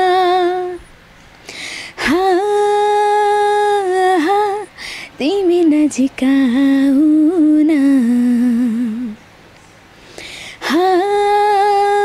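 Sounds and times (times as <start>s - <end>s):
woman singing unaccompanied: 0.0s - 0.9s, 1.9s - 9.2s, 10.5s - 12.0s.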